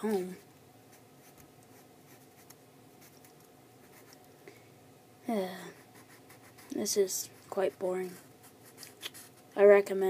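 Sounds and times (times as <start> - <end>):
marker scratching on paper: 5.7 - 9.4.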